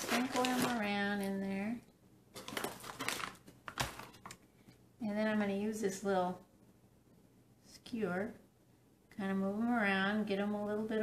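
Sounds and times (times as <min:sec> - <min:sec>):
paper bag crinkling: 0:00.0 - 0:01.3, 0:02.4 - 0:04.4.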